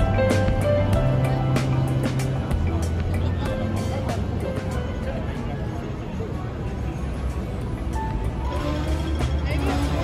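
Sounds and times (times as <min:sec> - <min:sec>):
steady melody notes: 0:00.0 - 0:05.6
background music: 0:00.0 - 0:10.0
crowd chatter: 0:00.0 - 0:10.0
traffic noise: 0:00.0 - 0:10.0.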